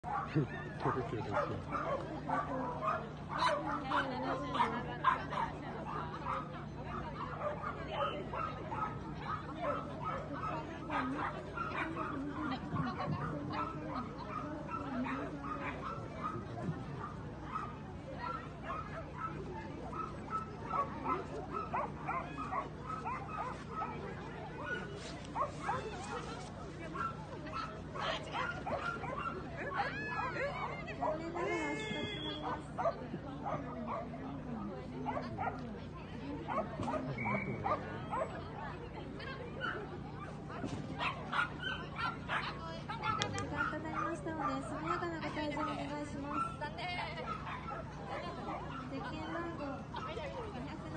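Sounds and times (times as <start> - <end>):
small dog barking: 12.8 - 24.0, 36.5 - 38.4, 41.0 - 45.0, 47.2 - 48.9.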